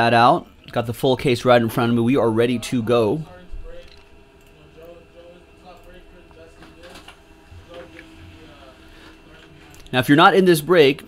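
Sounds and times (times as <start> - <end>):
printer printing: 4.4 - 10.3.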